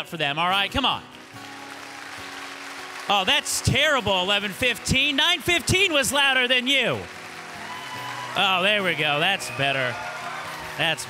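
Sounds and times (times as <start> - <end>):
congregation clapping: 1.0 - 11.0.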